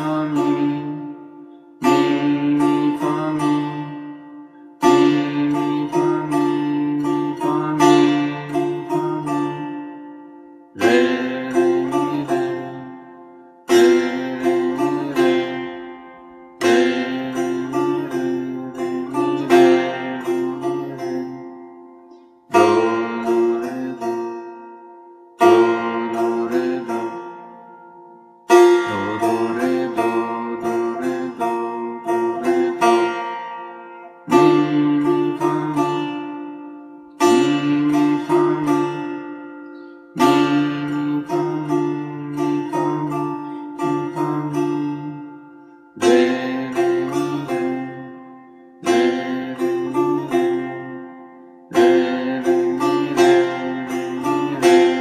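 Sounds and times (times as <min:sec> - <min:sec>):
plucked setar: 0:00.0 - 0:55.0.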